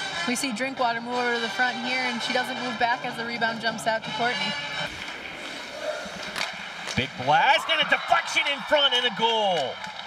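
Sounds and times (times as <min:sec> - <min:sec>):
arena background noise: 0:00.0 - 0:10.0
hockey shot crack: 0:04.9 - 0:07.3.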